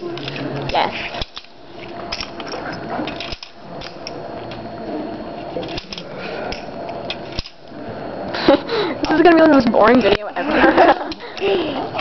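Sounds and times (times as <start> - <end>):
murmur of room noise: 0.0 - 12.0.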